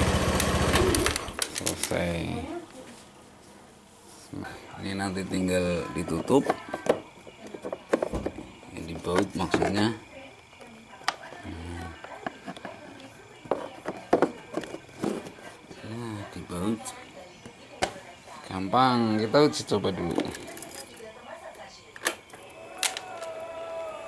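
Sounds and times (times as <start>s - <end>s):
indistinct talking: 4.4s - 24.0s.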